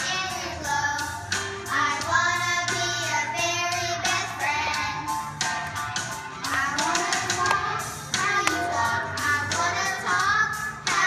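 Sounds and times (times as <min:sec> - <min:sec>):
young children singing: 0:00.0 - 0:11.0.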